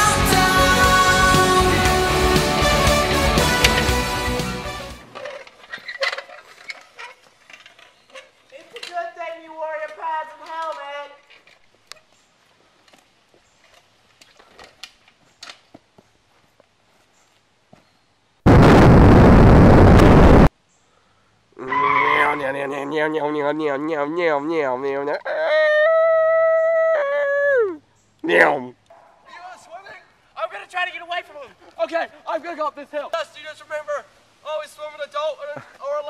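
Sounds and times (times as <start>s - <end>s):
pop music: 0.0s - 5.0s
loud rushing noise burst: 18.5s - 20.5s.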